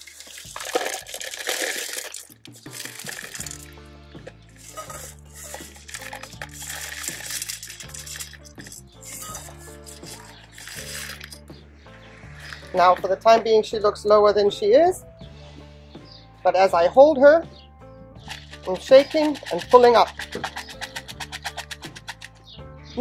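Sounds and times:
clay pebbles pouring into a pot: 0:00.0 - 0:11.4, 0:18.2 - 0:22.3
background music with bass line: 0:02.2 - 0:23.0.

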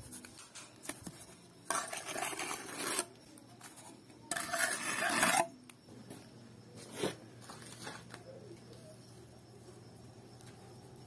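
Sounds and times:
trowel scraping wet mortar: 0:01.7 - 0:03.1, 0:04.3 - 0:05.5.

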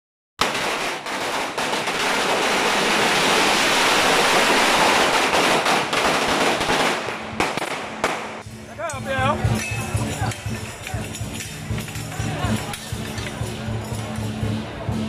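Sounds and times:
firecrackers crackling: 0:00.4 - 0:15.0.

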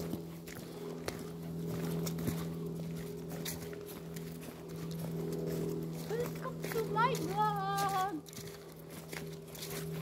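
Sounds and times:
footsteps on fallen leaves: 0:00.0 - 0:10.0
steady low hum: 0:00.0 - 0:10.0.

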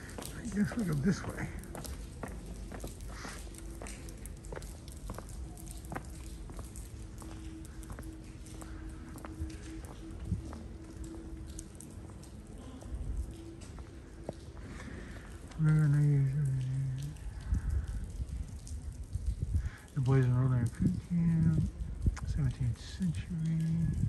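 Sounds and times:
footsteps on stone paving: 0:00.0 - 0:17.6.

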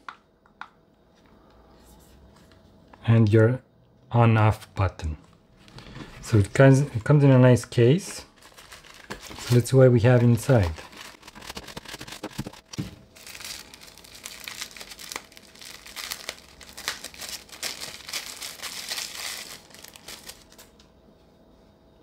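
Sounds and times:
plastic bags crinkling: 0:08.2 - 0:20.7.

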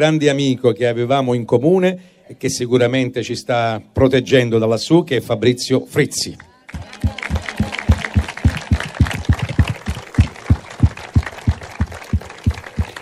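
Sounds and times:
close hands clapping: 0:06.4 - 0:13.0
audience applause: 0:06.7 - 0:13.0.

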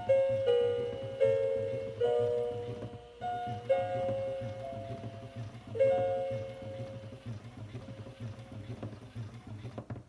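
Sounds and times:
toy chiming tune: 0:00.0 - 0:06.9
toy motor pulsing hum: 0:00.0 - 0:10.0.

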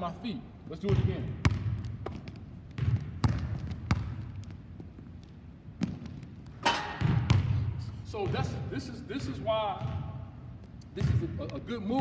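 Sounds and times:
basketball bouncing on hardwood: 0:00.9 - 0:05.1, 0:05.8 - 0:06.3, 0:07.0 - 0:07.6.

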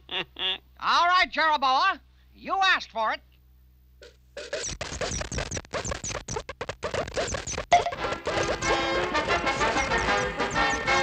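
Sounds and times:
music: 0:07.7 - 0:11.0.

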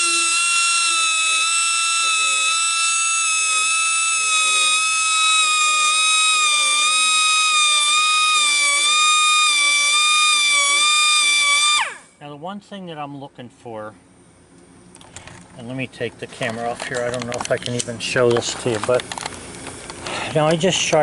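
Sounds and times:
grinder whining: 0:00.0 - 0:12.0.

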